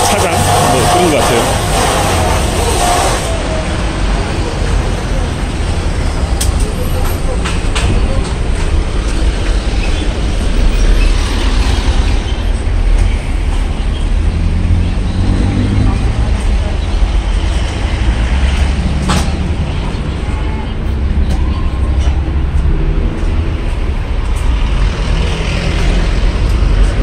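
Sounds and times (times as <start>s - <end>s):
traffic passing: 0.0s - 27.0s.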